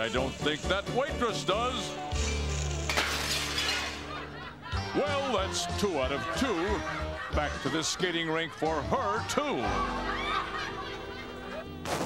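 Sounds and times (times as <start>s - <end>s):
background music: 0.0s - 12.0s
dishes and glasses crashing: 2.3s - 4.3s.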